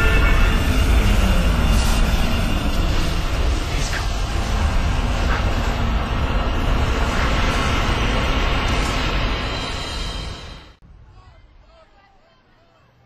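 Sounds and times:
loud dense rumbling roar: 0.0s - 9.6s.

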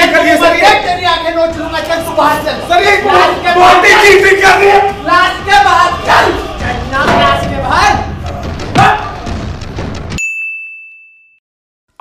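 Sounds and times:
busy noisy mix: 0.0s - 9.4s
high bell-like ding: 10.2s - 11.4s.

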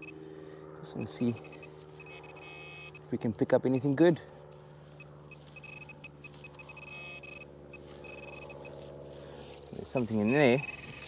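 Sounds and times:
pinpointer beeping: 1.0s - 3.0s, 3.7s - 4.1s, 5.3s - 8.8s, 10.2s - 11.0s.

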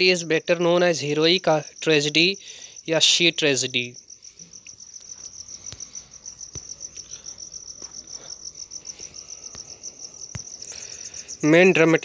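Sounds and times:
insect trilling: 0.0s - 12.0s.

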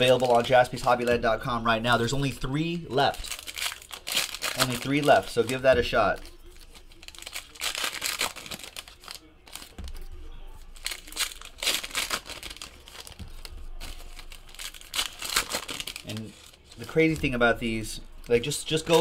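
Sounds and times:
wrappers tearing and crinkling: 0.0s - 1.2s, 2.6s - 19.0s
cards being handled: 2.9s - 19.0s.

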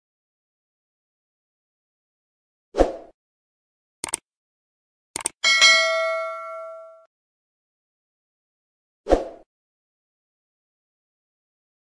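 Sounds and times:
double mouse click: 4.0s - 4.2s, 5.2s - 5.4s
bright bell chime: 5.4s - 7.1s.

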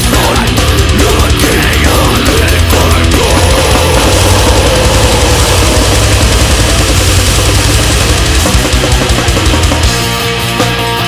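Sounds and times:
grindcore band music: 0.0s - 11.0s.

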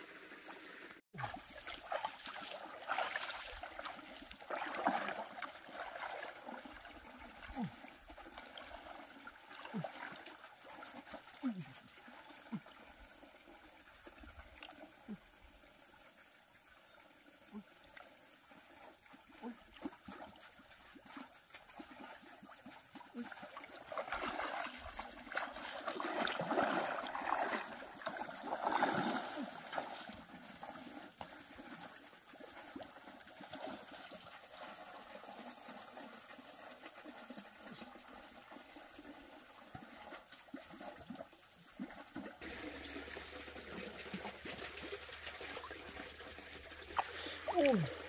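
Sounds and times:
water splashing and dripping: 0.0s - 15.2s, 17.5s - 48.0s
person wading through water: 0.2s - 15.8s, 17.2s - 48.0s.

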